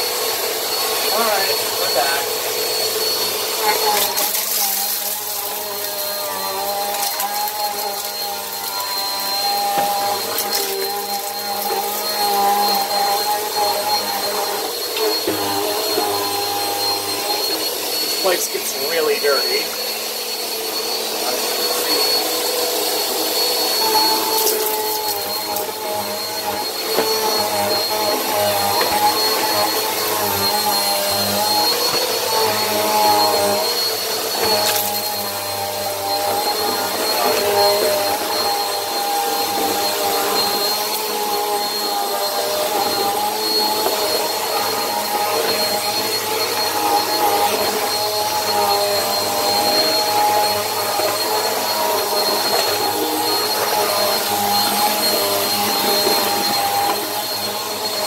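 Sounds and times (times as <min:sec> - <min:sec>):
vacuum cleaner motor whine: 0:00.0 - 0:58.0.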